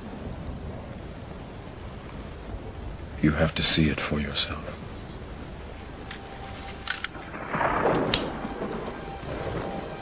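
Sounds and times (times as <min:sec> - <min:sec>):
rain: 0:00.0 - 0:10.0
thunderstorm rumble: 0:00.0 - 0:10.0.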